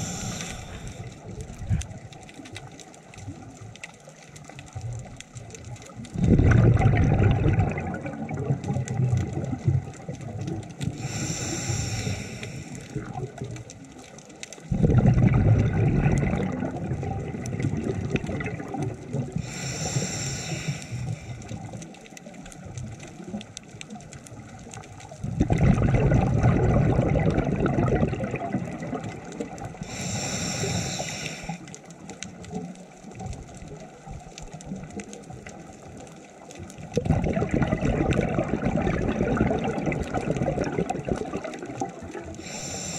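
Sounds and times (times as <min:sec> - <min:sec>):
regulator hissing inhale: 0:00.0 - 0:01.3, 0:10.9 - 0:13.0, 0:19.4 - 0:21.5, 0:29.8 - 0:31.8, 0:42.4 - 0:42.9
bubbling exhaust bubbles: 0:00.0 - 0:02.1, 0:04.8 - 0:12.2, 0:12.9 - 0:13.8, 0:14.6 - 0:20.0, 0:24.2 - 0:31.6, 0:36.8 - 0:42.9.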